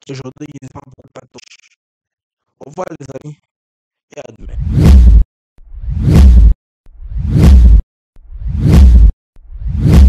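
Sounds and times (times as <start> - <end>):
whoosh sound effects: 5.8 - 7.8, 8.4 - 10.0.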